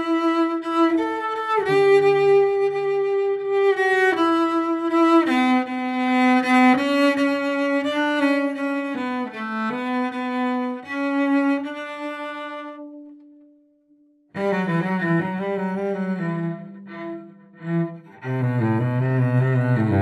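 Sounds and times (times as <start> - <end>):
bowed cello: 0.0 - 13.6, 14.3 - 20.0.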